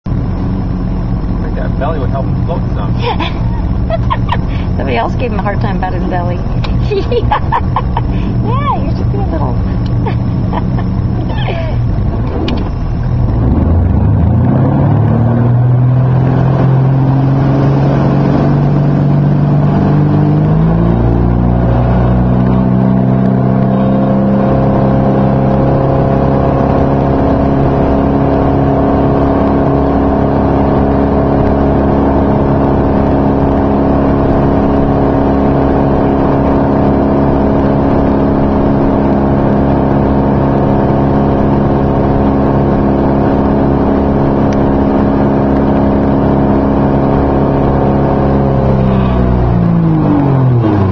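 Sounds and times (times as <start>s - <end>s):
boat engine revving up: 1.5s - 50.9s.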